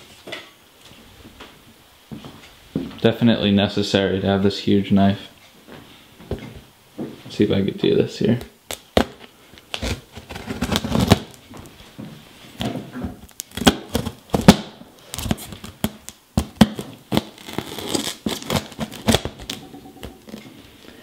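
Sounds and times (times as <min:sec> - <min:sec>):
knife cutting plastic wrap: 0:08.7 - 0:11.4, 0:13.3 - 0:20.4
plastic film tearing and snapping: 0:08.7 - 0:11.4, 0:13.2 - 0:20.4.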